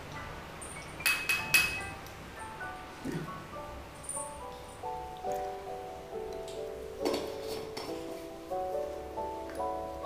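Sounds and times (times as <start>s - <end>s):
soft background music: 0.0s - 10.0s
utensil clinking against container: 0.7s - 1.9s.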